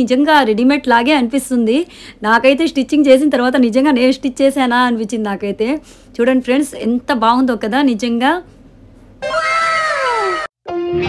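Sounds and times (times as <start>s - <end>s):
guitar music: 10.7s - 11.0s.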